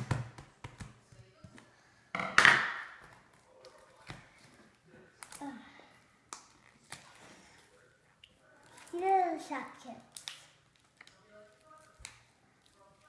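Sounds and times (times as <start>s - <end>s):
faint plastic rustling: 3.0s - 13.0s
plastic wrapper ripping: 10.0s - 12.8s.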